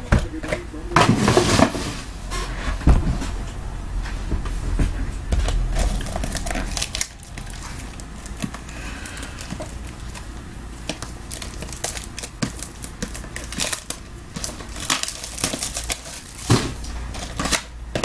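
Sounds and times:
packaging tearing and crinkling: 5.3s - 17.8s.

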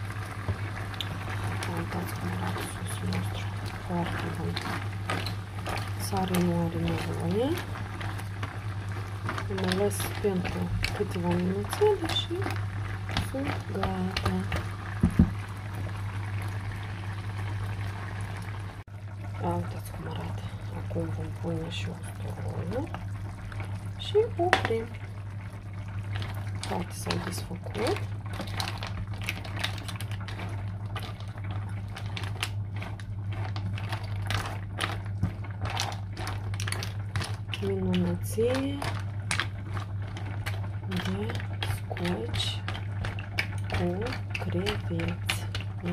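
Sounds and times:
constant low hum: 0.0s - 45.9s
seafood simmering in a frying pan: 0.0s - 45.9s.

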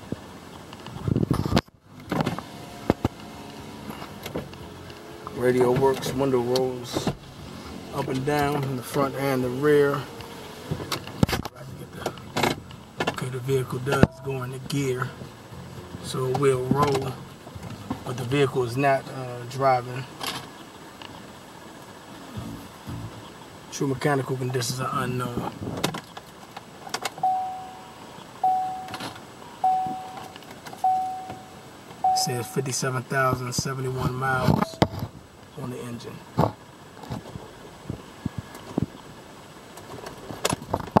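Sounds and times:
gear selector clicks and clunks: 10.2s - 14.2s, 25.8s - 32.6s, 34.4s - 35.2s.

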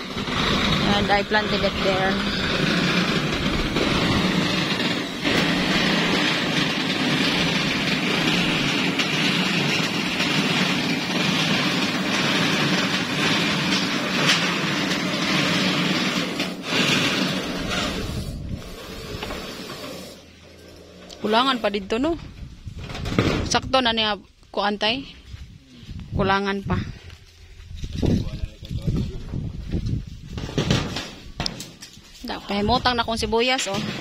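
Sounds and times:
engine running: 0.0s - 22.5s.

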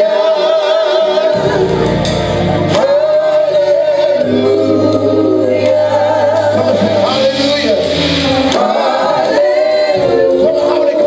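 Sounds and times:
gospel singers singing worship song: 0.0s - 11.0s.

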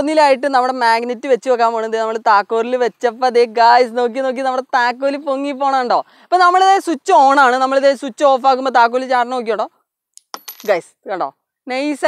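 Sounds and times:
metal pieces clinking on wood: 10.2s - 10.8s.

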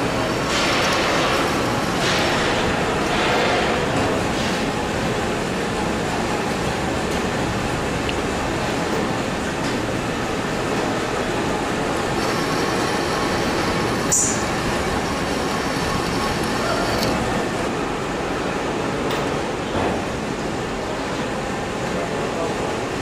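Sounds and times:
metal lathe cutting: 11.8s - 17.7s.

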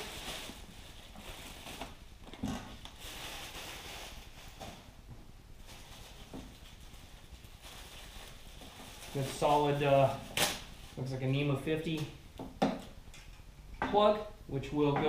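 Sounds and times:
plastic bag rustling: 0.0s - 5.0s, 5.6s - 11.6s.

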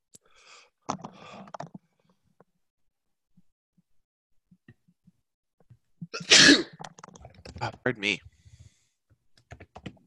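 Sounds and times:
man sneezing: 6.2s - 6.7s.

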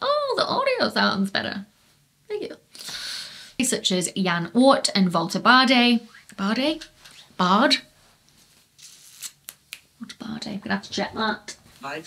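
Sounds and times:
soft rustle: 1.7s - 2.1s, 6.9s - 9.4s, 11.6s - 12.0s.

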